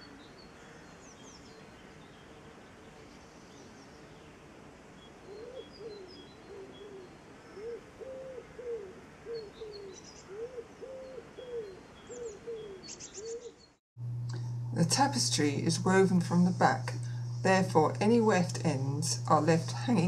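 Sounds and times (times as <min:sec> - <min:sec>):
steady background hiss: 0:00.0 - 0:12.8, 0:14.0 - 0:20.0
small birds chirping: 0:05.0 - 0:13.8
bird cooing: 0:05.3 - 0:13.7.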